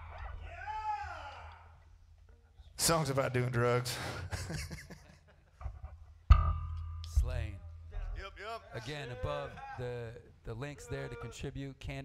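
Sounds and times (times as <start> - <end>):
low amplifier hum: 6.3 - 8.5.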